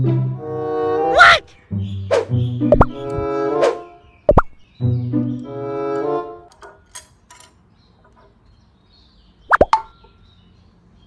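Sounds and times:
cartoon plop pops: 0:02.1 - 0:04.6, 0:09.5 - 0:09.9.

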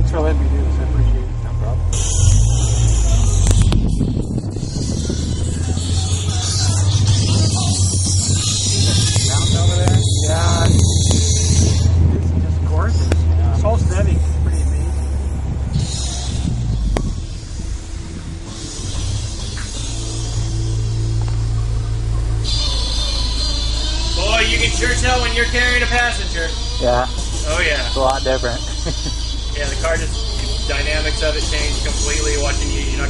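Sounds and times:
car engine droning: 0:00.0 - 0:33.0
voices: 0:00.0 - 0:33.0
music: 0:02.0 - 0:12.0, 0:14.6 - 0:33.0.

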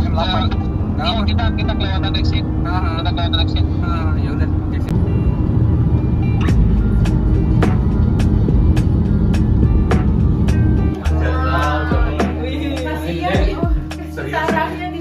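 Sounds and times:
car cabin road noise: 0:00.0 - 0:15.0.

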